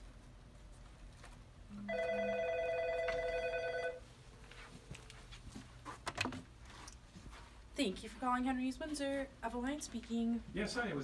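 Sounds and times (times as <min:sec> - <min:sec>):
telephone two-tone trill: 0:01.9 - 0:04.0.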